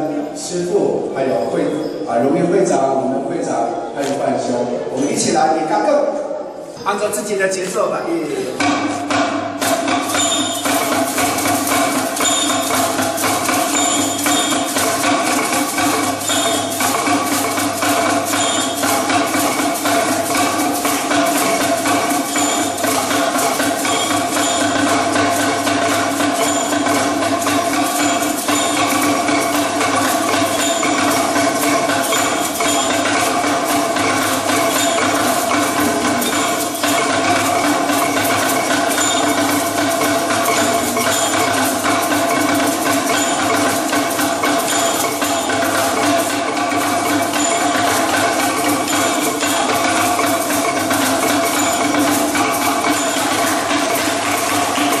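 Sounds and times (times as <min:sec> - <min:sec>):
bamboo tubes clattering: 0:07.0 - 0:55.0
steady ringing pitch: 0:09.6 - 0:55.0.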